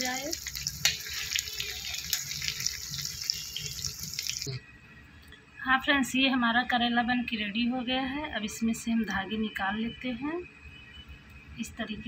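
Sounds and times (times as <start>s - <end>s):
vegetables sizzling in hot oil: 0.0s - 4.5s.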